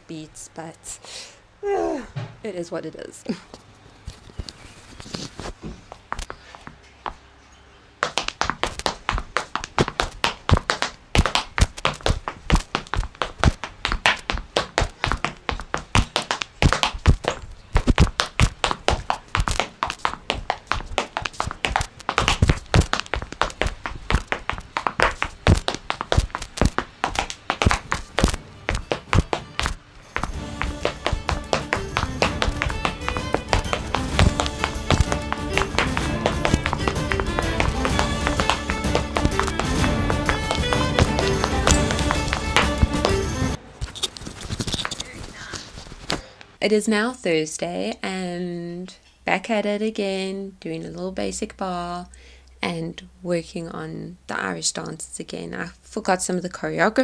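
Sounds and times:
hard shoes tapping on floor: 8.0s - 43.6s
music: 28.0s - 43.6s.

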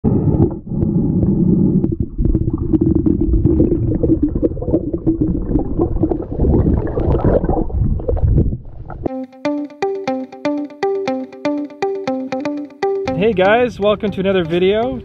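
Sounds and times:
underwater rumble and gurgling: 0.0s - 9.1s.

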